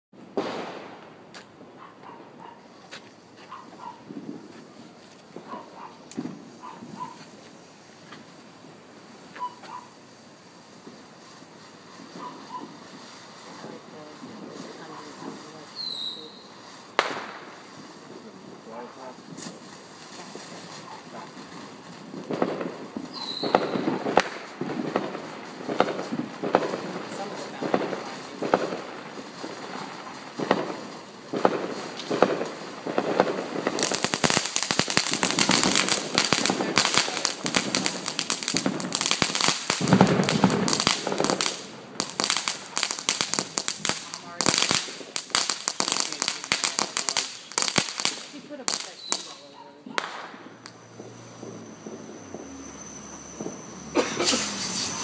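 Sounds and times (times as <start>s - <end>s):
firework crackling pops: 0.1s - 55.0s.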